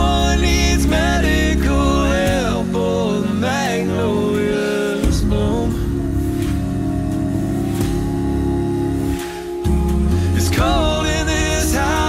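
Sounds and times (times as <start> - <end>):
a cappella group singing chord: 0.0 - 12.0.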